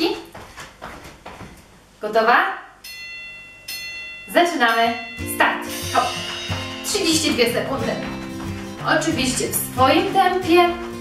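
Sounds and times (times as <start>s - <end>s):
sneakers thudding on exercise mat: 0.1s - 1.8s, 6.2s - 11.0s.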